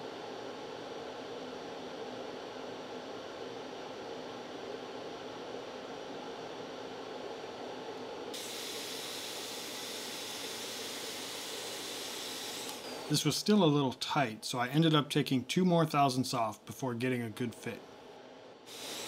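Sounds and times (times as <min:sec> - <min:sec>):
handheld router cutting wood: 0:08.4 - 0:13.1, 0:18.7 - 0:19.0.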